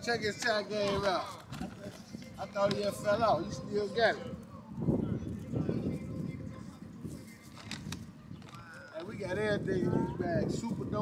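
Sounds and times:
sharp plastic crackles: 7.4 - 9.2.

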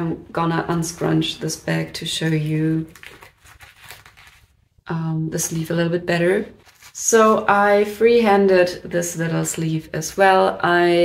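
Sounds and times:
fabric rustling: 3.0 - 4.6, 6.5 - 7.4.

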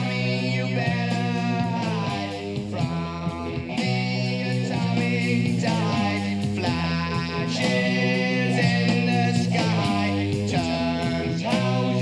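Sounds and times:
hard rock with electric guitar: 0.0 - 12.0.

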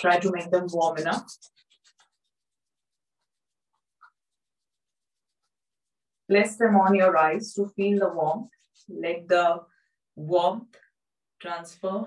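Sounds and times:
palms rubbing together: 0.0 - 9.5.

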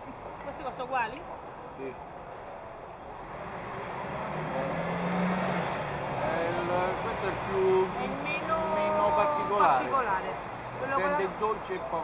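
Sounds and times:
motor vehicle passing: 3.1 - 12.0.

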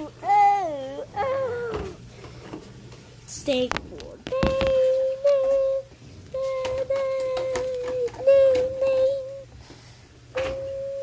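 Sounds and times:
high whining voice: 10.4 - 11.0.

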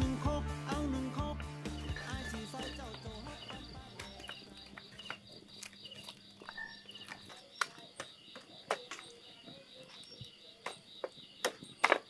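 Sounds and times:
music: 0.0 - 5.2
campfire crackling and popping: 1.4 - 9.2.

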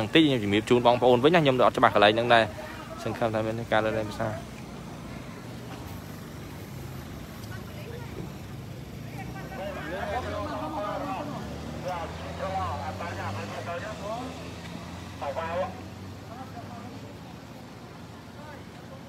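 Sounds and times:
people talking: 0.0 - 19.0
vehicle engine running: 0.0 - 19.0.

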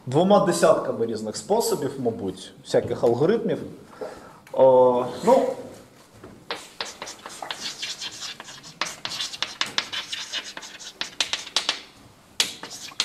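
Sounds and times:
chalk writing on blackboard: 6.5 - 13.0.

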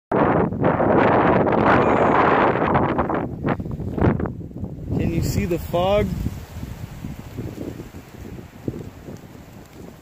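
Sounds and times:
strong wind through trees: 0.1 - 10.0
wind buffeting microphone: 0.1 - 10.0.

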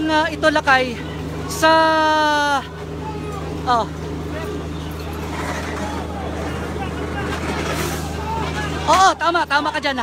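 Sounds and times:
faint voices talking: 0.0 - 10.0
low engine-like hum: 0.0 - 10.0.

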